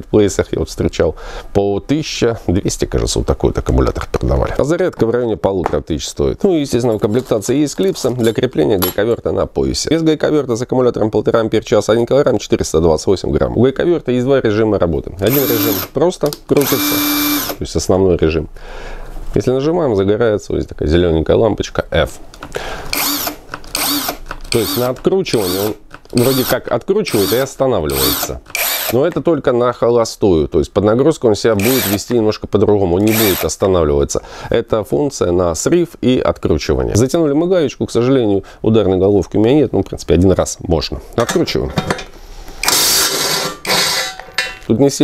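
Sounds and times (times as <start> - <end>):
impact wrench motor spinning: 15.2 - 15.9, 16.6 - 17.6, 22.9 - 29.0, 31.6 - 32.1, 33.0 - 33.5, 42.6 - 44.1.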